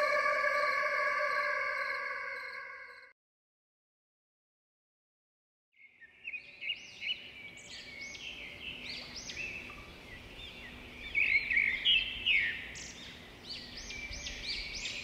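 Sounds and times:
small birds chirping: 5.8 - 15.0.

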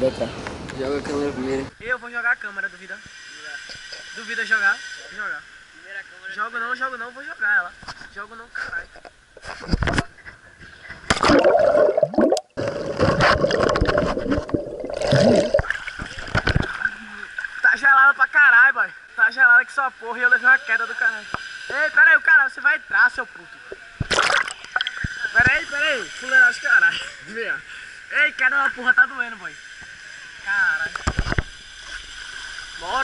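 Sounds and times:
underwater high hum: 9.4 - 18.0
camera splashing into water: 11.1 - 16.8, 24.0 - 25.1
churning water: 11.1 - 17.6, 24.0 - 25.1.

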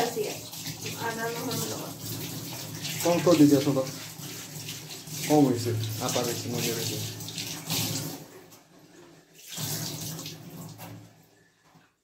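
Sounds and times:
tap water running into sink: 0.0 - 11.8.

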